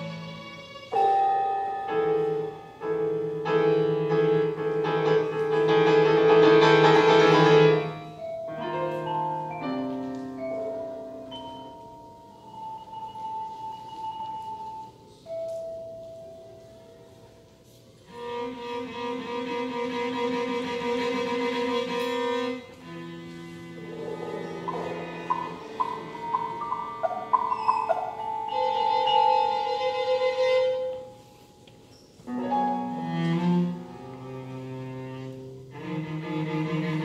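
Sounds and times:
cello: 0:00.0 - 0:11.4, 0:17.7 - 0:37.0
violin: 0:00.0 - 0:11.4, 0:17.7 - 0:37.0
mallet percussion: 0:24.6 - 0:30.5.

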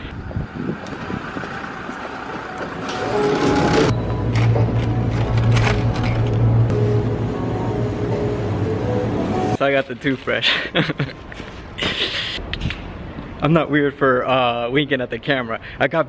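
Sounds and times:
street ambience: 0:00.0 - 0:16.0
music playing: 0:02.7 - 0:09.6.

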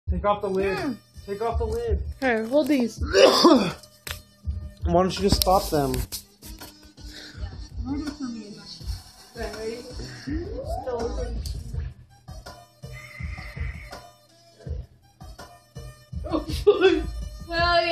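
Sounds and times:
background music: 0:00.1 - 0:17.9.

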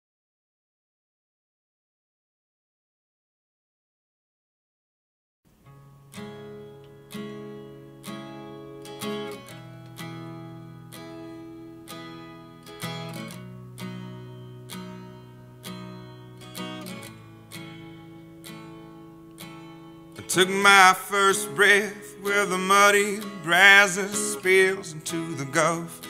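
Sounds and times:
acoustic guitar chords: 0:05.5 - 0:26.0.

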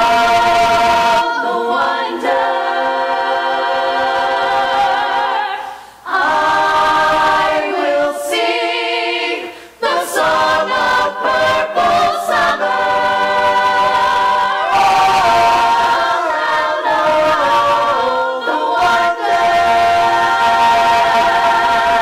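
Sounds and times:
choir singing in harmony: 0:00.0 - 0:22.0.

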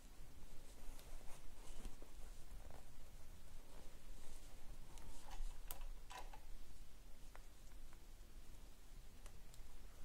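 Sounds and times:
fabric rustling: 0:00.0 - 0:07.6.

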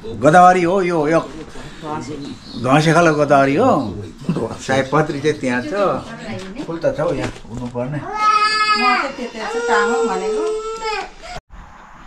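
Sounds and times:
young child crying: 0:08.1 - 0:11.4.

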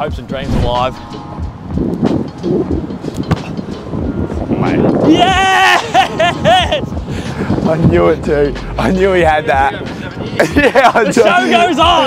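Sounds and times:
wind buffeting microphone: 0:00.0 - 0:05.5, 0:06.1 - 0:10.6.

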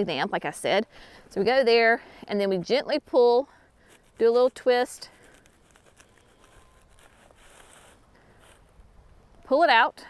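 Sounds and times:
plastic pot crinkling and scraping: 0:03.8 - 0:09.5.

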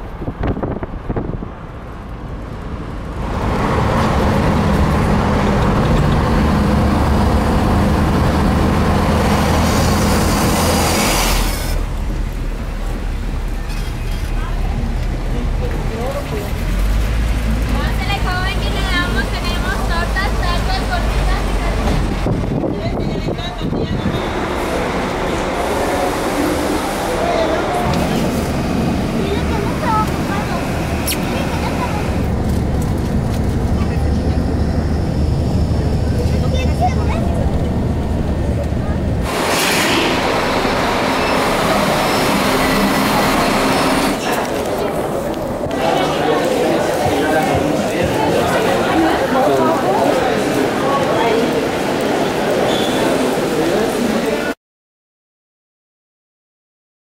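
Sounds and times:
road and engine rumble: 0:00.0 - 0:54.6.

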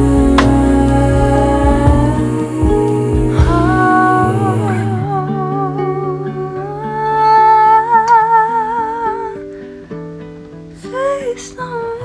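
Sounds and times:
guitar and bass: 0:00.0 - 0:06.8
woman's wordless vocal: 0:00.0 - 0:09.4, 0:10.8 - 0:12.0.

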